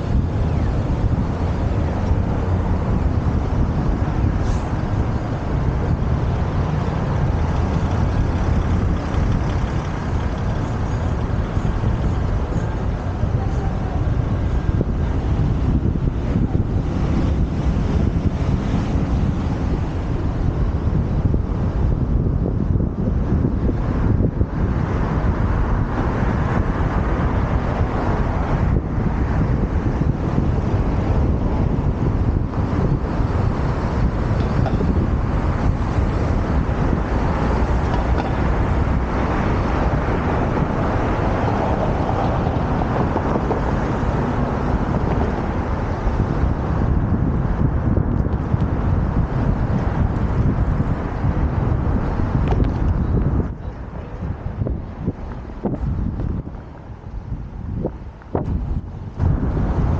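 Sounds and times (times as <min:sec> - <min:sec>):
city street traffic: 0:00.0 - 0:59.9
wind noise on microphone: 0:00.0 - 0:59.9.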